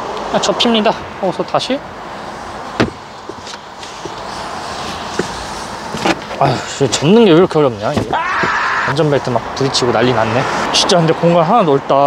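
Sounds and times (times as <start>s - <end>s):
rustling and scraping of seat: 2.5s - 6.8s.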